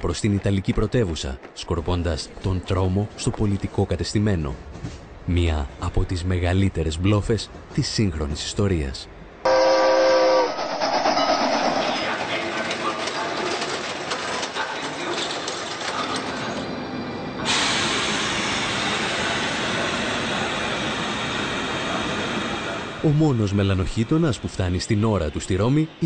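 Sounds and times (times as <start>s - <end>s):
train running: 9.3s - 26.0s
train whistle: 9.4s - 11.8s.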